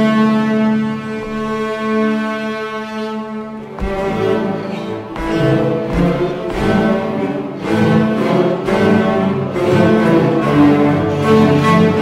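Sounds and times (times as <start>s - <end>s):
cello ensemble playing: 0.0s - 12.0s.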